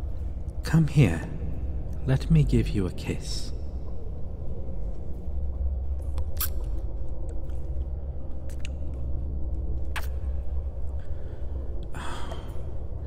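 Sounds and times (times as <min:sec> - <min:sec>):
low rumbling background: 0:00.0 - 0:13.0
kissing lip smacks: 0:06.2 - 0:06.7, 0:09.9 - 0:10.3.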